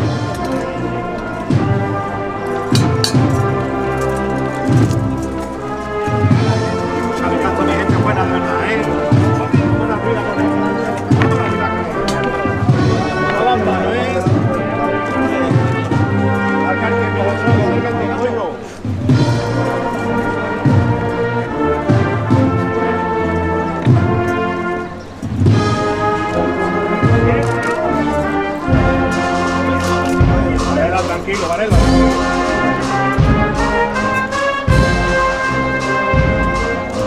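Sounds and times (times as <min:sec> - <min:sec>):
brass band playing a march: 0:00.0 - 0:37.0.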